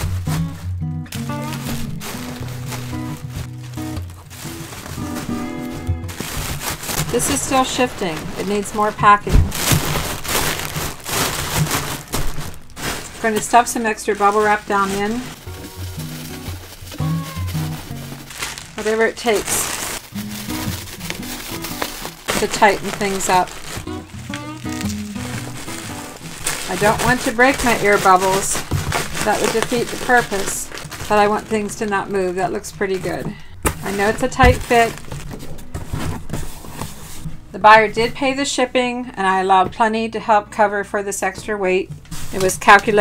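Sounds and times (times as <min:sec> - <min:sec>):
background music with bass line: 0:00.0 - 0:04.2
cardboard box flaps folding: 0:00.0 - 0:13.2, 0:15.3 - 0:31.2, 0:33.6 - 0:37.3
cardboard scuffing: 0:00.0 - 0:13.6, 0:14.2 - 0:31.6, 0:33.0 - 0:37.4, 0:42.0 - 0:43.0
bubble wrap crinkling: 0:00.0 - 0:37.3, 0:42.0 - 0:43.0
soft thumps: 0:00.1 - 0:13.2.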